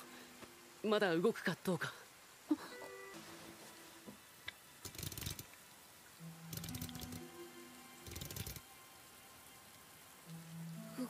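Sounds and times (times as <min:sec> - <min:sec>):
quiet soundtrack music: 0:00.0 - 0:11.0.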